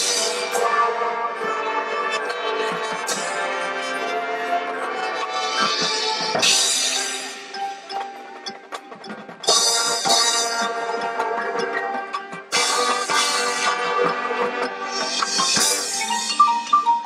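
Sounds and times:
mallet percussion: 0:00.0 - 0:17.0.

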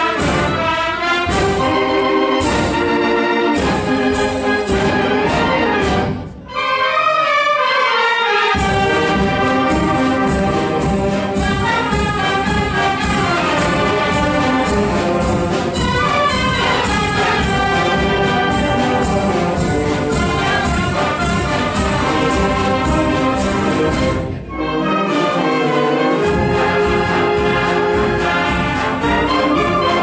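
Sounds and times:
percussion beat: 0:00.0 - 0:06.4, 0:08.6 - 0:24.5, 0:26.1 - 0:30.0
wind band playing: 0:00.0 - 0:30.0.

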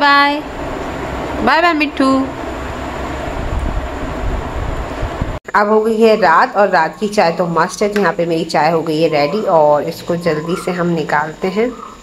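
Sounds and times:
machine rushing and rumbling: 0:00.0 - 0:05.4.

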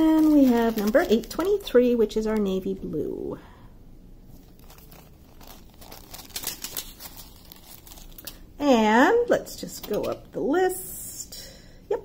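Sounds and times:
plastic packaging crinkling: 0:00.0 - 0:02.9, 0:04.2 - 0:08.5, 0:09.5 - 0:10.2.

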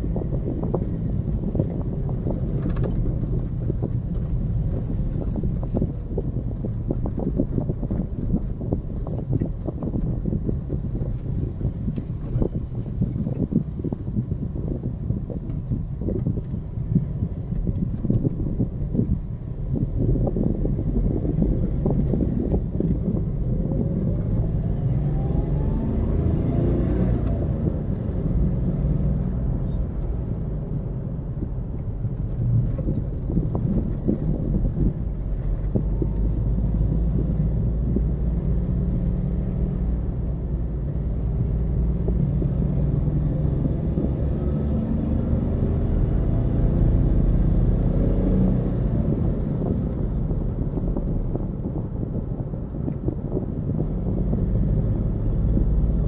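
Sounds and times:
car engine rumble: 0:00.0 - 0:56.0
tyres on the road: 0:00.0 - 0:56.0.

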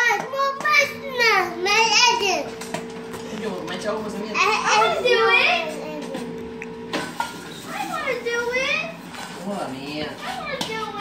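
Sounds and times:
child's drawn-out wordless voice: 0:00.0 - 0:02.6, 0:04.4 - 0:06.3, 0:07.6 - 0:09.0, 0:10.2 - 0:11.0.

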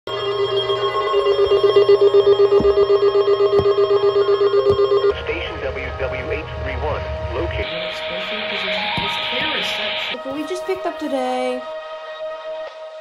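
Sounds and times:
pulsing electronic alert tone: 0:00.1 - 0:05.4
wavering voice or music on radio: 0:07.5 - 0:11.6.

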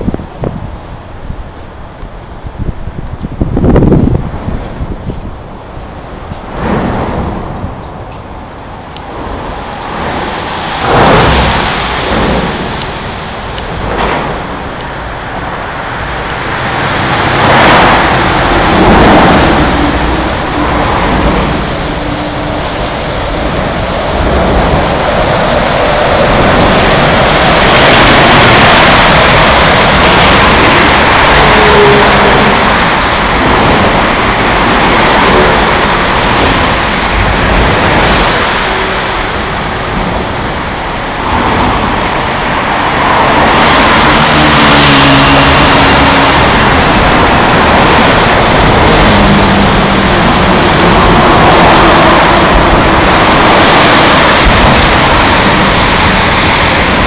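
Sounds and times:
passing vehicle engine hum: 0:01.2 - 0:57.0
traffic rushing past: 0:02.6 - 0:57.0.

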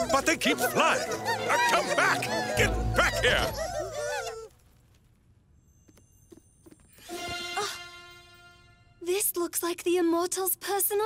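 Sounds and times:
faint high ringing tones: 0:05.5 - 0:07.2.

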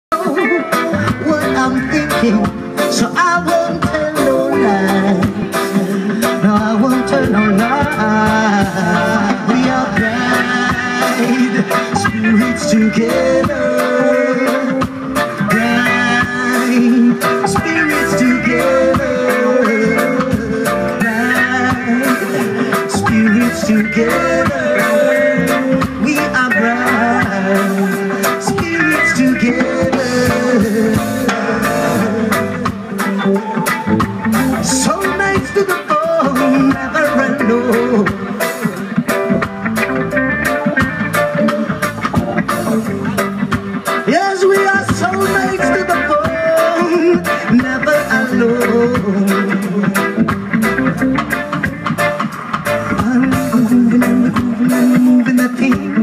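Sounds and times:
bass: 0:00.1 - 0:56.0
drums: 0:00.1 - 0:56.0
electric guitars: 0:00.1 - 0:56.0
keyboard: 0:00.1 - 0:56.0
reggae band playing: 0:00.1 - 0:56.0.

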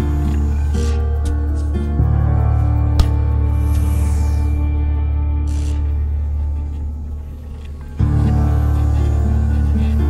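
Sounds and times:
low rumbling drone: 0:00.0 - 0:10.0.

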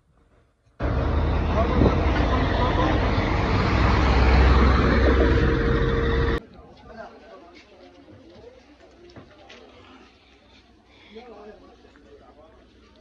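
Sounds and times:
road traffic rumble: 0:00.8 - 0:06.4.

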